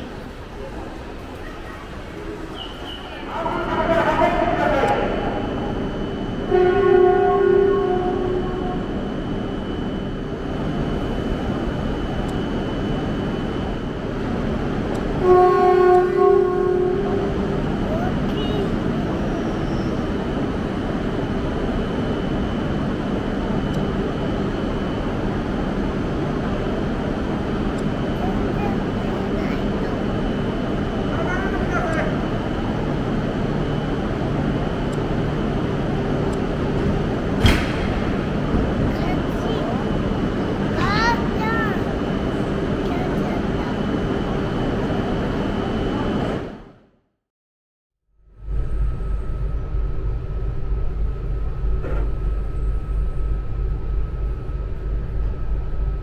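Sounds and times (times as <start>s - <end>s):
train running slowly: 0.0s - 46.8s, 48.2s - 56.0s
train horn: 6.4s - 9.0s, 15.2s - 17.6s.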